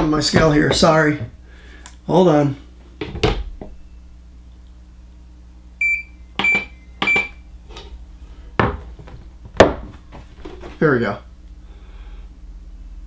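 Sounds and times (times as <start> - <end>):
digital scale beeping: 5.8 - 7.4.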